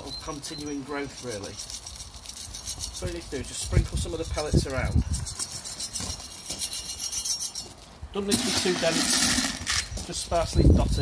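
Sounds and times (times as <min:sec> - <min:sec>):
pellets pattering onto soil: 0:08.3 - 0:10.1.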